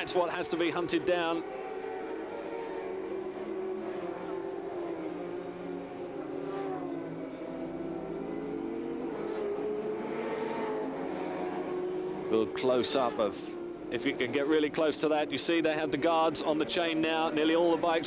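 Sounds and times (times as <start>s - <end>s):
racing motorcycle engines revving: 0.0s - 18.0s.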